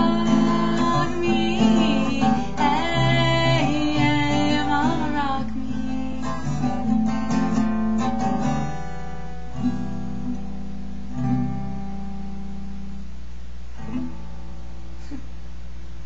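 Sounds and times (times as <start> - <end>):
woman singing: 0.0 - 7.0
acoustic guitar strumming: 0.0 - 15.5.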